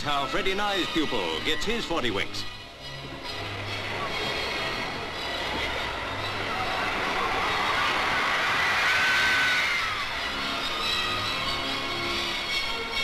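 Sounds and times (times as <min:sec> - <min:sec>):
children laughing and cheering: 0:05.7 - 0:10.5.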